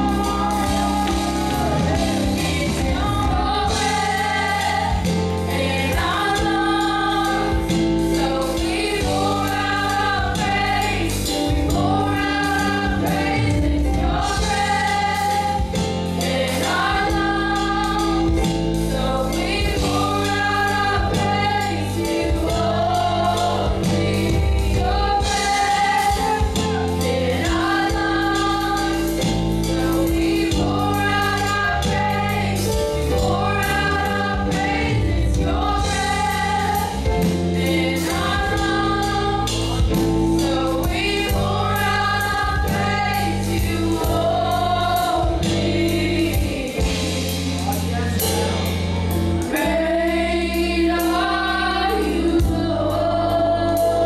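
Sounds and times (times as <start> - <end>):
drums: 0.0 - 54.0
keyboard: 0.0 - 54.0
women singing gospel: 0.0 - 54.0.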